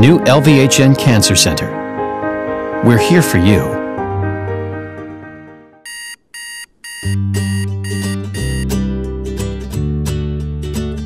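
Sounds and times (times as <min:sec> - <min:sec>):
background music: 0:00.0 - 0:05.8, 0:07.0 - 0:11.0
alarm clock beeping: 0:05.8 - 0:08.7.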